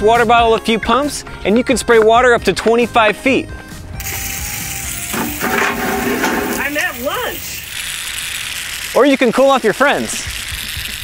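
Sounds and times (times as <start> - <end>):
water spray hissing: 4.0 - 11.0.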